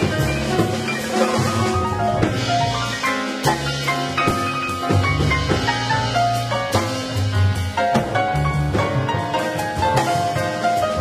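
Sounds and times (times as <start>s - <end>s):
jazz combo playing tango tune: 0.0s - 11.0s
sharp drum strikes: 0.0s - 11.0s.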